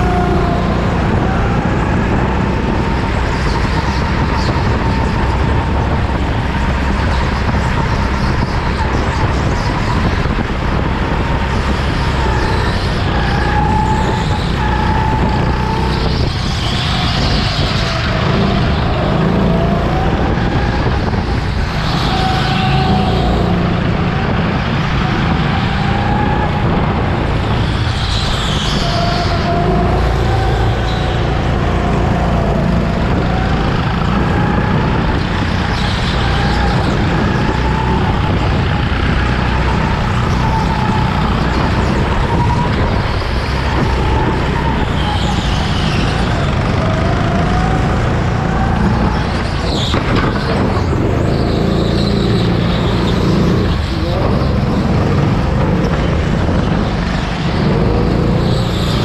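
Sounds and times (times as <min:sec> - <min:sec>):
go-kart motor whine: 0:00.0 - 0:59.0.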